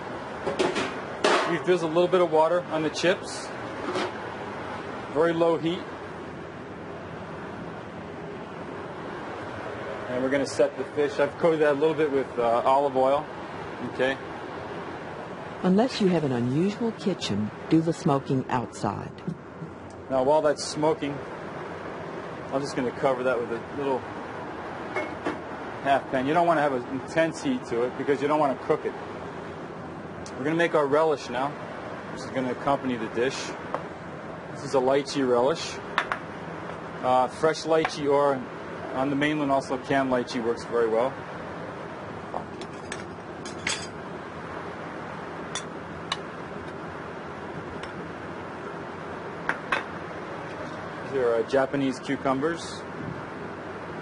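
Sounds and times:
steady background hiss: 0.0 - 54.0.

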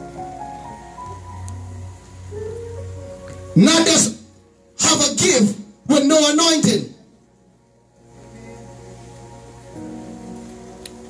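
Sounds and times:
electronic keyboard church chords: 0.0 - 11.0
person preaching: 3.6 - 7.1.

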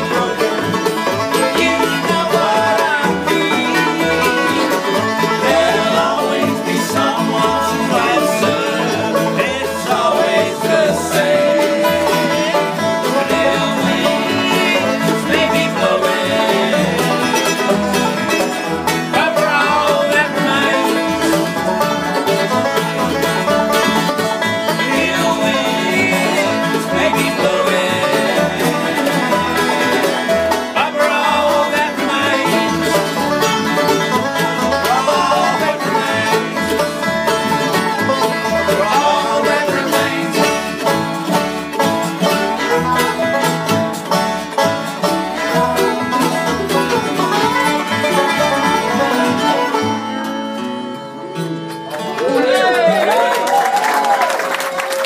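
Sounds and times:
men singing: 0.0 - 41.6, 45.4 - 49.8
plucked double bass: 0.0 - 52.9
strummed string instrument: 0.0 - 54.2
picked banjo: 0.0 - 55.0.

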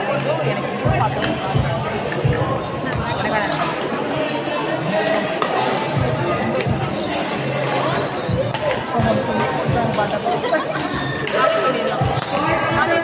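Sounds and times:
hubbub of voices: 0.0 - 13.0
rackets hitting shuttlecock: 5.0 - 6.0, 6.6 - 10.2.

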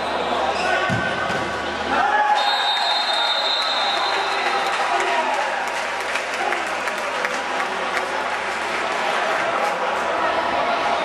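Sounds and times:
spectators applauding: 2.8 - 10.0
murmur of voices: 4.2 - 11.0.

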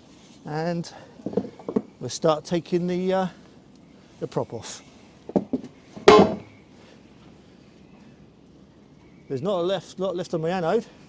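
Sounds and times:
ringing clunk: 6.0 - 6.5.

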